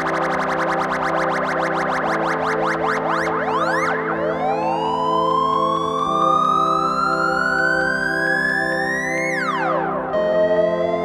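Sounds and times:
synth drone chords: 0:00.0 - 0:07.4, 0:08.0 - 0:11.0
rising synthesizer tone: 0:00.0 - 0:08.5.

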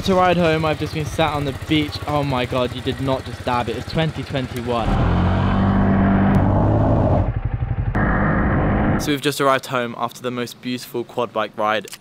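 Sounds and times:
quad bike engine running: 0:00.0 - 0:09.0.

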